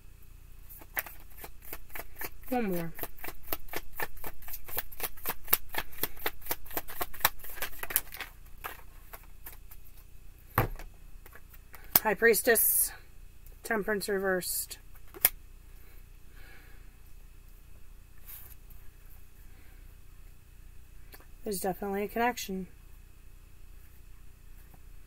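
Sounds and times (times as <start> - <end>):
cards being shuffled: 0.7 - 12.0, 14.9 - 15.4.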